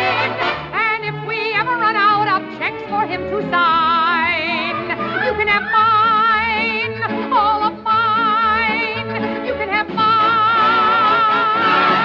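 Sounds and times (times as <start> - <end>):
woman singing with vibrato: 0.0 - 12.0.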